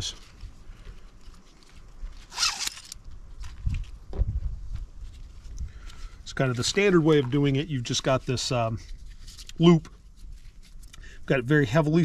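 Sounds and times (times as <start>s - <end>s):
strap zipping through buckle: 2.2s - 3.0s.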